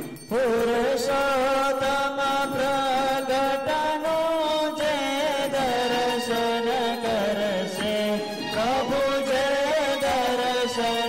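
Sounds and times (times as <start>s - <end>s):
devotional chanting in long notes: 0.3s - 11.0s.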